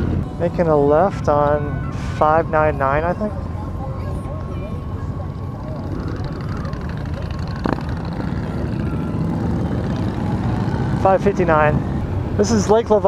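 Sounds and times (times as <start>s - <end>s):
motorcycle engine cruising: 0.0s - 13.0s.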